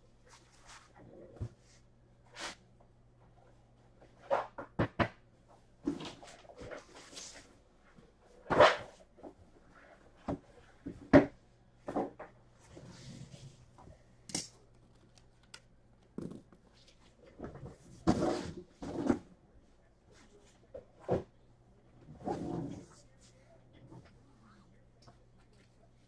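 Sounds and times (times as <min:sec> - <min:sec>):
rustling and shuffling: 0:00.0 - 0:04.7, 0:05.4 - 0:24.6.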